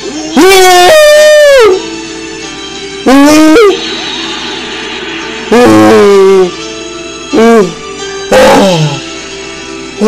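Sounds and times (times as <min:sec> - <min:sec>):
quiet background music or hum: 0:00.0 - 0:10.0
man's loud distorted ooh: 0:05.5 - 0:06.5.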